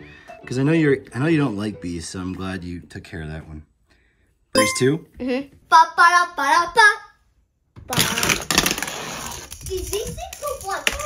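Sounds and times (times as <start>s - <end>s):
toy trucks rattling down plastic track: 7.9s - 11.0s.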